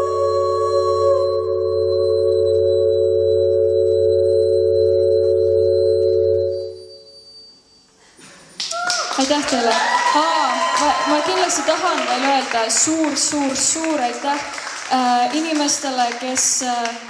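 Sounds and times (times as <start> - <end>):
low bass drone: 0.0 - 6.9
synthesizer chord: 0.0 - 7.2.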